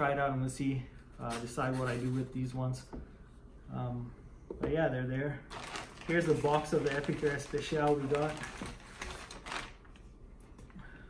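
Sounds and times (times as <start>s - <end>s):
plastic bag crinkling: 5.5s - 10.1s.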